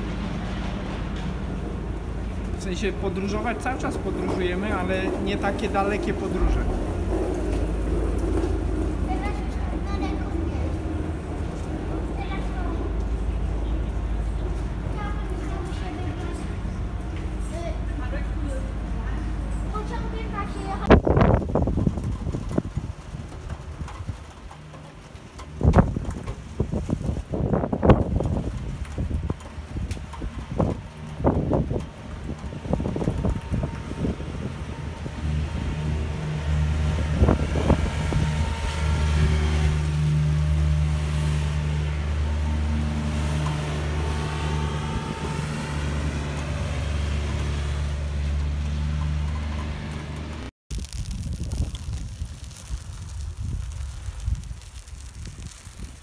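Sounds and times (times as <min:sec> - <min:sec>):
vehicle engine humming: 0:00.0 - 0:56.0.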